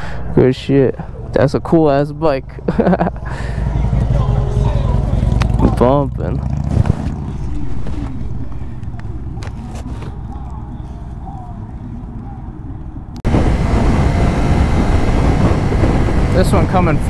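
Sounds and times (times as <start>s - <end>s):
motorcycle engine at speed: 2.9s - 9.4s, 13.2s - 17.0s
wind rush over microphone: 13.0s - 17.0s.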